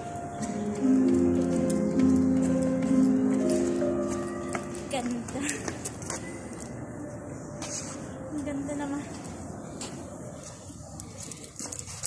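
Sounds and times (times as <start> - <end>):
background music: 0.0 - 5.6
footsteps on stairs: 0.0 - 6.4.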